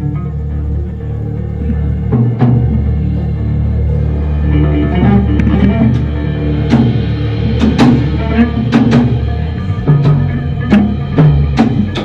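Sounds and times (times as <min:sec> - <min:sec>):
rock band sustained bass and guitar: 0:00.0 - 0:12.0.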